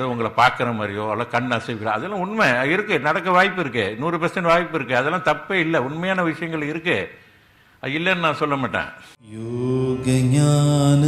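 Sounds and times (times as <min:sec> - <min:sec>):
devotional chant with held notes: 0:09.2 - 0:11.0.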